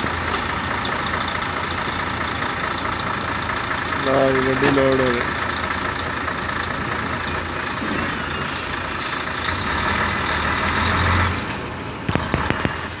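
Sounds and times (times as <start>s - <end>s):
heavy vehicle engine running: 0.0s - 13.0s
air hiss: 9.0s - 9.4s.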